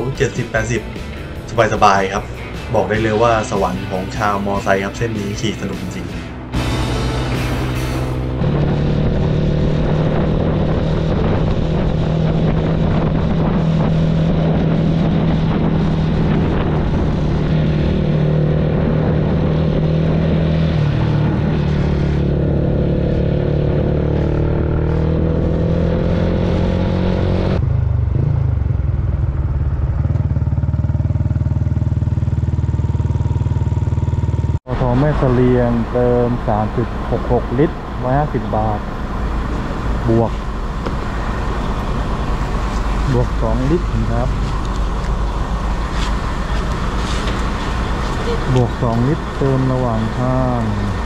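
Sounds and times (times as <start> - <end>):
motorcycle engine running: 0.0 - 51.0
wind and road noise: 0.0 - 51.0.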